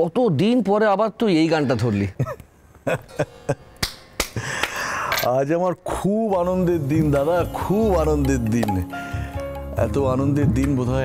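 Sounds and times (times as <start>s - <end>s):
man laughing breathily: 2.2s - 3.7s, 4.4s - 5.1s.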